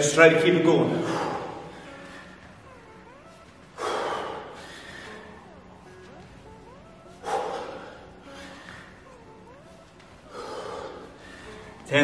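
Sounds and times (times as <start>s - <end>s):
man breathing heavily: 0.9s - 11.9s.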